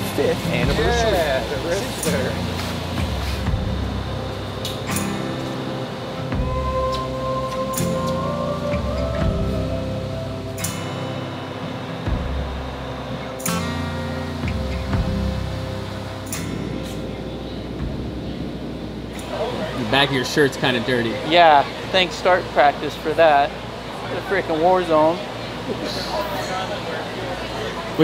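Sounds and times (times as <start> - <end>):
background music with bass line: 0.0 - 19.8.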